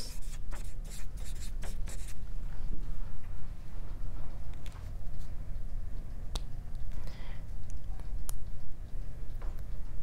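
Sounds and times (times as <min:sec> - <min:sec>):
marker writing on paper: 0:00.0 - 0:02.2
pens writing on paper: 0:00.0 - 0:02.2
low room hum: 0:00.0 - 0:10.0.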